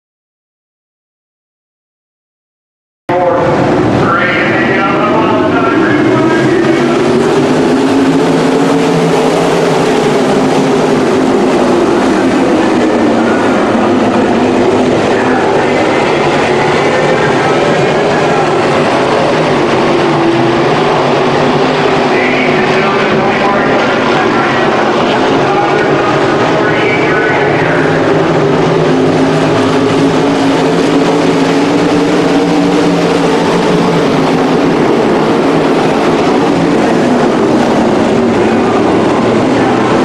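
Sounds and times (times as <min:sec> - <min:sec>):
racing car engines droning: 0:03.1 - 0:40.0.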